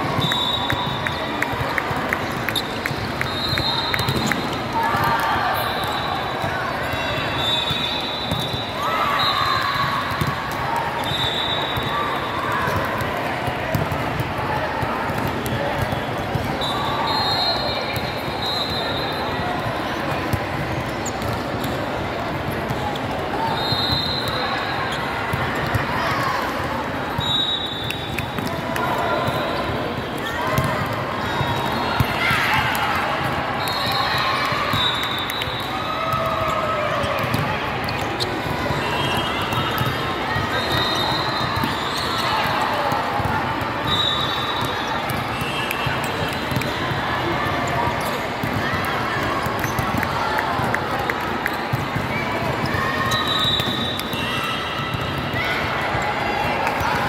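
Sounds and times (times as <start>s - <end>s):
babble of voices in hall: 0.0s - 57.0s.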